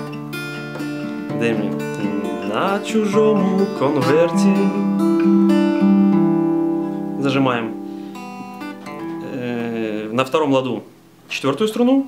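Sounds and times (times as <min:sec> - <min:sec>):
acoustic guitar strumming: 0:00.0 - 0:11.2
man singing: 0:01.3 - 0:05.2.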